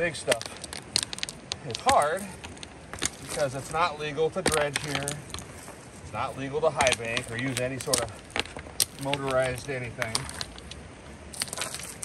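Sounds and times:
stones clacking and crunching: 0.0s - 12.0s.

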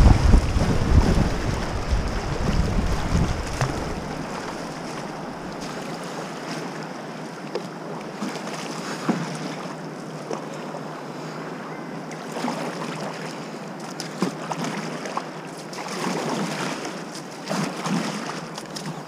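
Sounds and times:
sharp water splashes: 0.0s - 6.0s
river current rushing: 0.0s - 6.6s.

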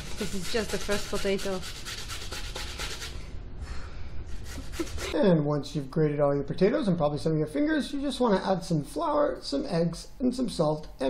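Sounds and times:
potato rasping on metal grater: 0.0s - 3.2s, 4.4s - 5.2s.

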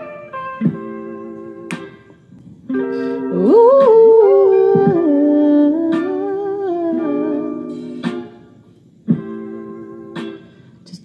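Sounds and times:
plucked guitar backing: 0.0s - 11.0s
woman humming a melody: 3.2s - 8.0s.

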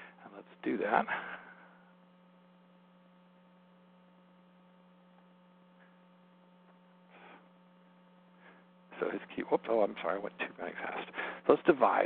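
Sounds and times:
faint steady tones: 0.0s - 12.0s
low electrical hum: 0.0s - 12.0s.

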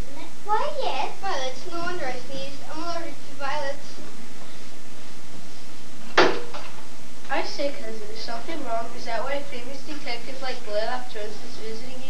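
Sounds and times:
steady background hum: 0.0s - 12.0s
sharp knock: 6.1s - 6.8s.

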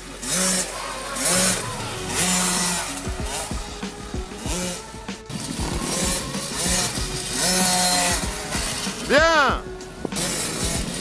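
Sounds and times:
small two-stroke engine revving: 0.0s - 11.0s.

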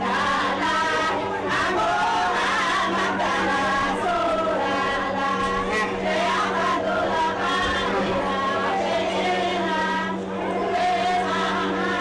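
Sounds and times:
group chant-like singing: 0.0s - 12.0s
steady low hum: 0.0s - 12.0s.

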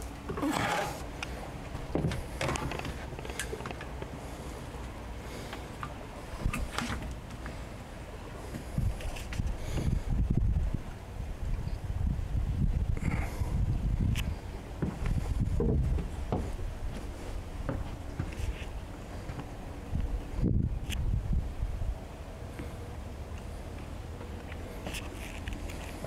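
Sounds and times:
wind buffeting microphone: 8.4s - 22.1s.

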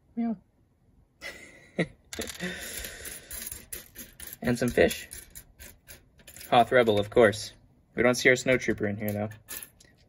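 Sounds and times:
plastic pieces clattering: 2.1s - 7.1s.

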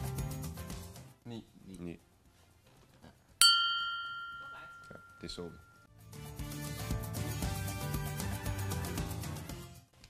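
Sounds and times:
bell-like chime: 3.4s - 5.9s.

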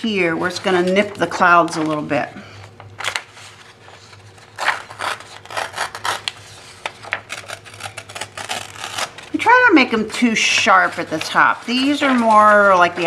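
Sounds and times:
paper being torn by hand: 4.0s - 9.5s.

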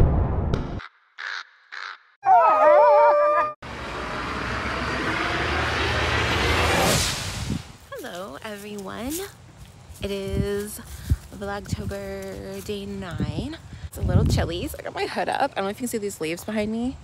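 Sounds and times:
deep boom: 0.0s - 0.8s
crow cawing: 0.8s - 2.2s
wind-like rushing noise: 3.7s - 7.9s, 13.2s - 14.8s.

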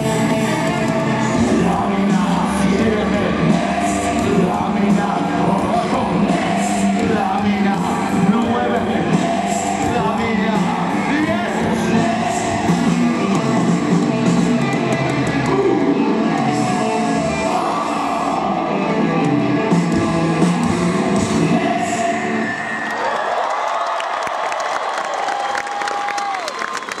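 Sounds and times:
live rock band playing: 0.0s - 22.7s
crowd cheering and whooping: 21.4s - 27.0s.

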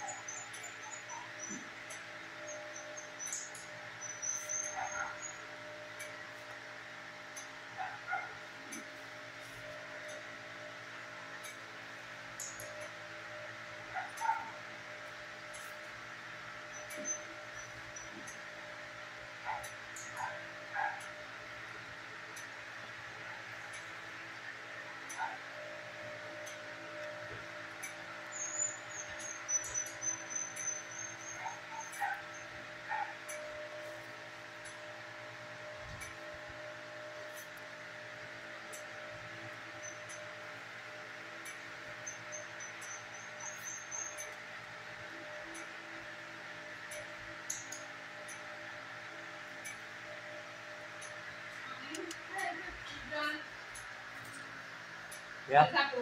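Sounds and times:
dogs yipping and barking: 0.0s - 6.2s, 7.4s - 8.9s, 12.4s - 15.8s, 16.5s - 18.5s, 19.4s - 21.3s, 25.0s - 45.4s
steady background hum: 0.0s - 56.0s.

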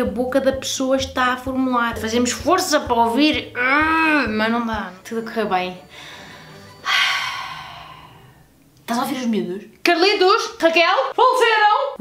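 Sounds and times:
woman sighing: 5.9s - 8.5s.

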